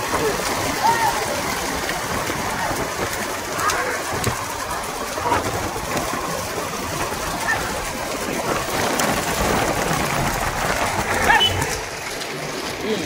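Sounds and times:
road noise: 0.0 - 13.0
wind: 0.0 - 13.0.

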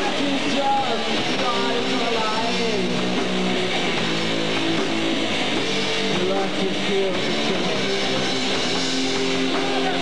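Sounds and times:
person singing: 0.0 - 2.9, 9.5 - 10.0
bass guitar: 0.0 - 10.0
drums: 0.0 - 10.0
electric guitar: 0.0 - 10.0.

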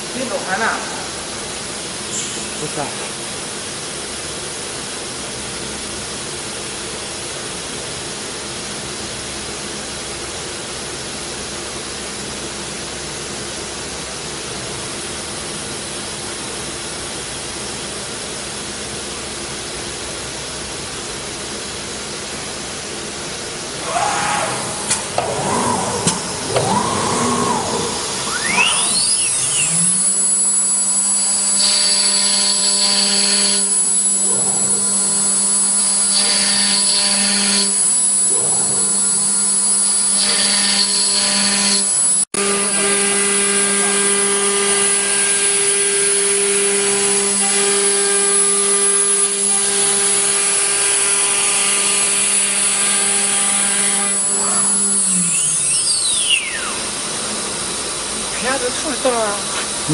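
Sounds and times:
router spindle whining: 23.9 - 59.9.

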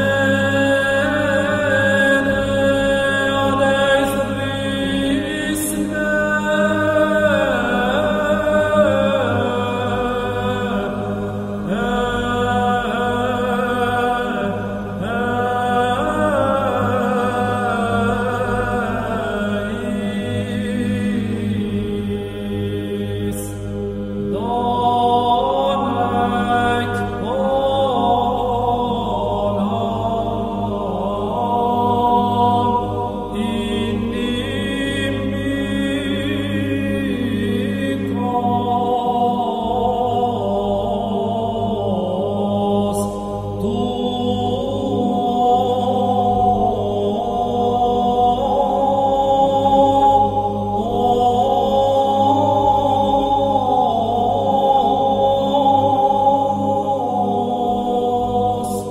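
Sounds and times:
low drone: 0.0 - 58.9
slow chanting voices: 0.0 - 58.9.

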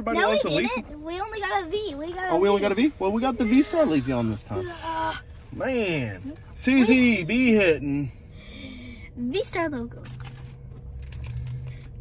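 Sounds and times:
low hum inside a car: 0.0 - 12.0.

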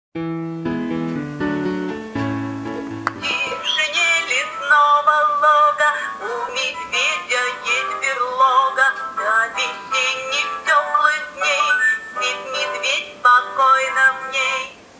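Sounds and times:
light electronic accompaniment: 0.4 - 4.6
person singing children's song: 3.1 - 14.9.

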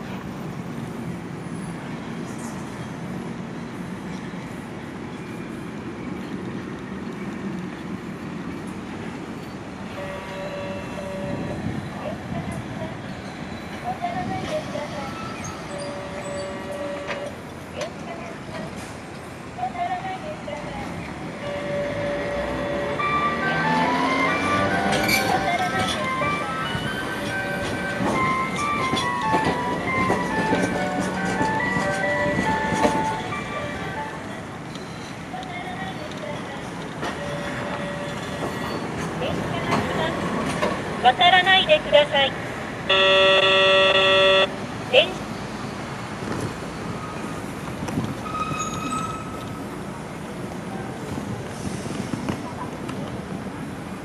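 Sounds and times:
tram motor whine: 21.2 - 35.0, 42.8 - 44.8.

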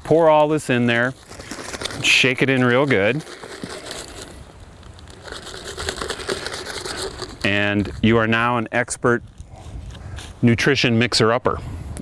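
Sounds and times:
powder shaken into water: 0.6 - 8.0
plastic bag crinkling: 0.8 - 7.5.

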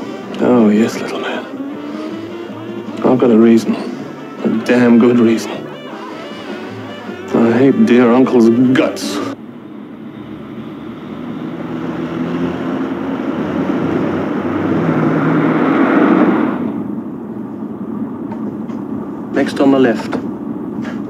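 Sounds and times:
car engine and tyre noise: 0.0 - 21.0.

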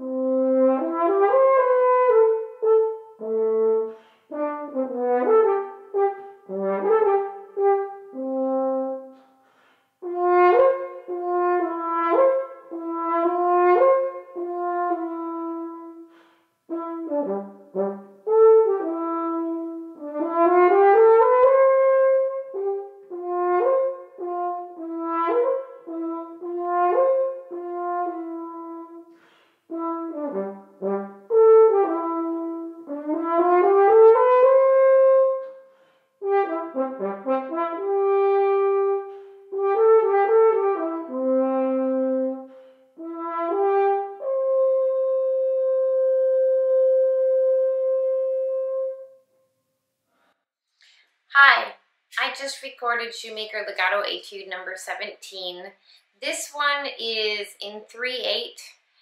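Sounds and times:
french horn playing: 0.0 - 49.2.

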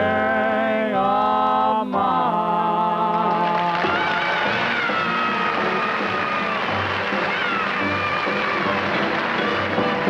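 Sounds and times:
dance orchestra playing: 4.2 - 10.0.

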